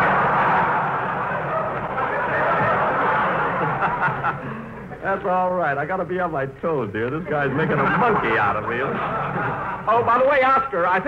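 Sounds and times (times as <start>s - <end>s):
audience laughing: 0.0s - 5.0s, 7.3s - 10.4s.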